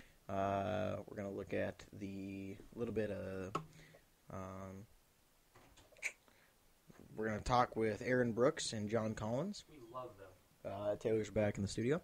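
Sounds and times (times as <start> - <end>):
faint hissy sound: 0.0 - 12.0.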